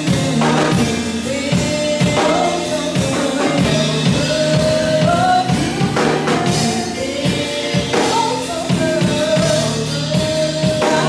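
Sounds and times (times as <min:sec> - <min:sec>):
band backing with drums: 0:00.0 - 0:11.0
women singing in harmony: 0:00.0 - 0:11.0.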